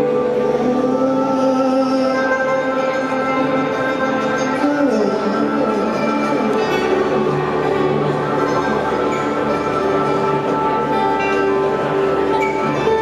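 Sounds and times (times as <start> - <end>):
band holding chords: 0.0 - 13.0
mandolin playing: 0.0 - 13.0.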